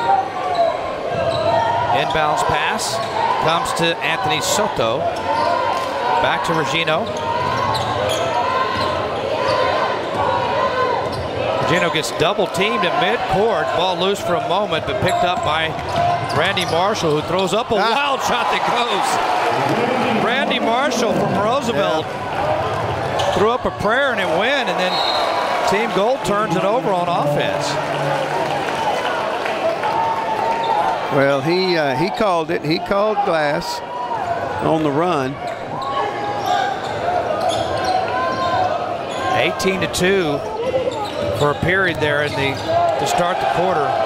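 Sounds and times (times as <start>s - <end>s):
crowd chatter in gymnasium: 0.0s - 44.0s
voices in a large hall: 0.0s - 44.0s.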